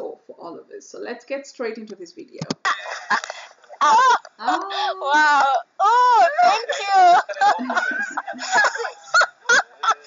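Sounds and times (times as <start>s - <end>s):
person yelping: 3.8s - 7.6s
person crying out excitedly: 3.8s - 7.8s.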